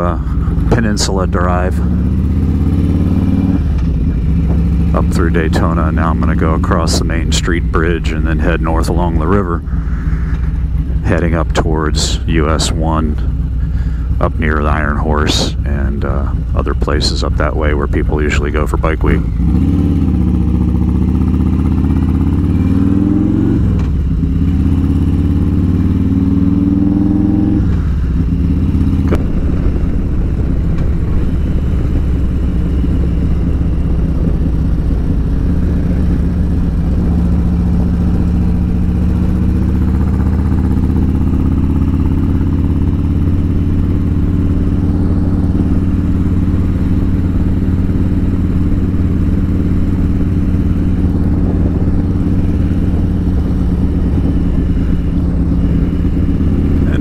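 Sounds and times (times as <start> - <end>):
motorcycle engine revving: 0.0 - 57.0.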